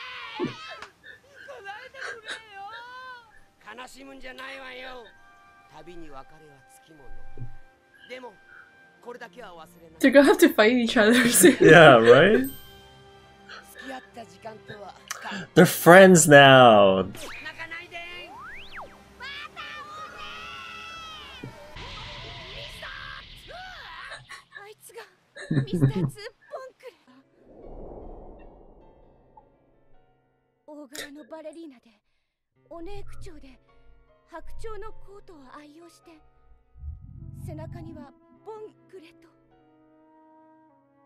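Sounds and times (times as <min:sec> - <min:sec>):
cartoon voices crying out: 0:00.0 - 0:00.9, 0:11.5 - 0:12.4, 0:15.6 - 0:17.1
faint background music: 0:00.4 - 0:27.3, 0:30.6 - 0:32.0, 0:32.6 - 0:40.1
person speaking dialogue: 0:10.0 - 0:12.5, 0:15.1 - 0:17.2, 0:25.5 - 0:26.2
character wailing and sobbing: 0:11.4 - 0:12.4, 0:15.4 - 0:17.1, 0:25.4 - 0:26.1.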